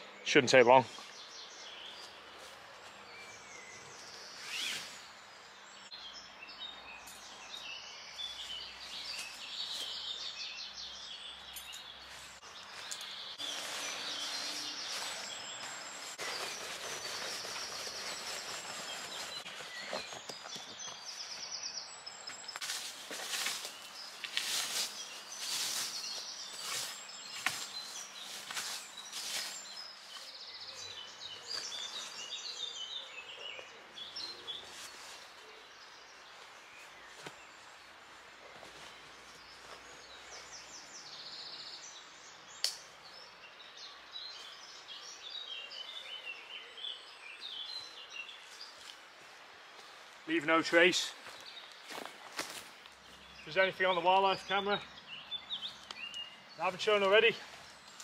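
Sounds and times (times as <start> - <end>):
birds chirping and singing: 0.0 - 49.2, 49.8 - 58.0
tarp rustling and crackling: 4.4 - 5.1, 12.1 - 21.2, 22.5 - 30.3.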